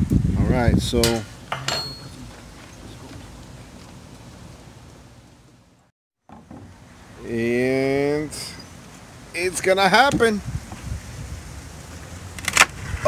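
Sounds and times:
light metallic clink: 1.0 - 2.2.

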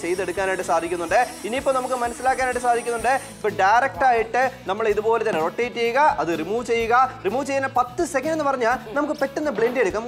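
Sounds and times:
portable blender hissing: 0.0 - 3.6.

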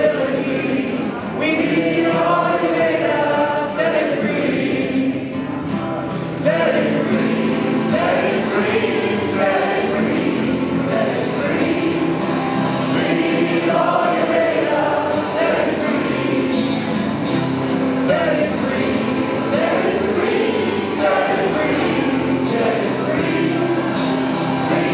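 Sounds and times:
men singing together: 0.0 - 5.4, 6.3 - 17.1, 17.9 - 24.9
acoustic guitar: 0.0 - 24.9.

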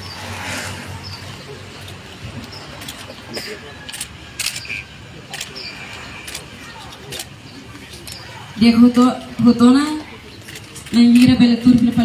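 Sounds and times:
low voices: 0.0 - 12.0
camera shutters clicking: 3.9 - 5.6.

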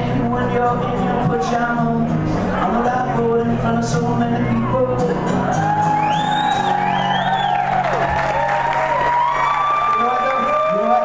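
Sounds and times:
acoustic band music: 0.0 - 11.0
audience whooping: 4.7 - 11.0.

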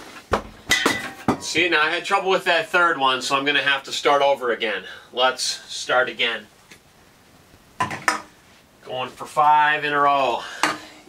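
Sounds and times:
cans and bottles knocking on table: 7.8 - 8.3.

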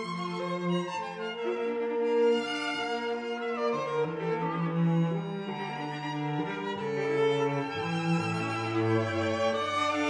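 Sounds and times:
cello: 0.0 - 10.0
violin: 0.0 - 10.0.

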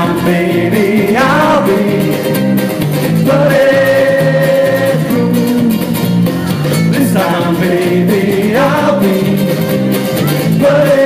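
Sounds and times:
ukulele band playing: 0.0 - 11.0.

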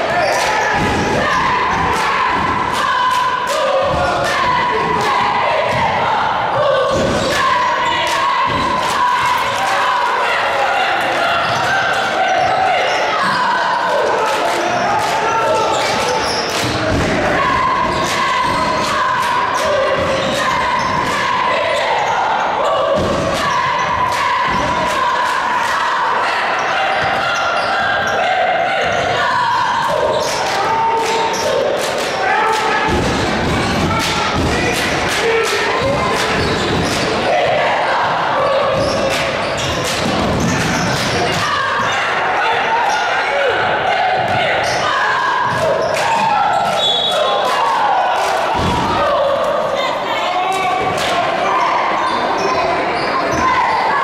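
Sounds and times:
indistinct voices: 0.0 - 54.0.

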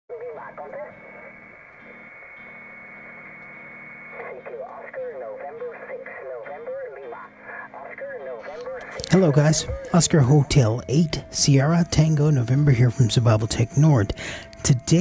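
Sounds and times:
distorted radio voice: 0.1 - 1.4, 4.1 - 15.0
steady radio whistle: 0.1 - 15.0.

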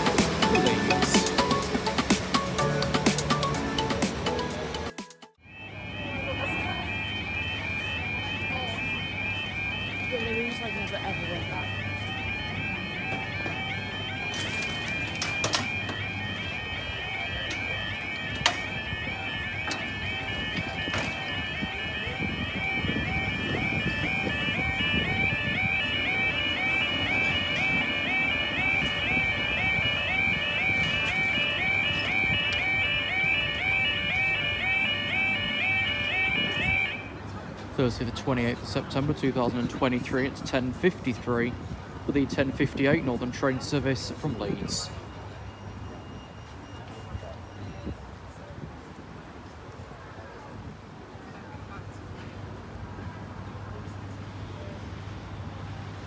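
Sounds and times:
level crossing alarm warbling: 0.0 - 37.2
low traffic rumble: 0.0 - 56.0.

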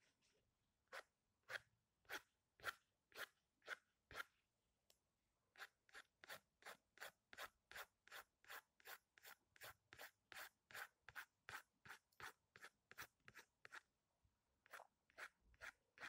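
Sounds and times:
pencil scratching on paper: 5.6 - 13.9, 14.7 - 16.0.

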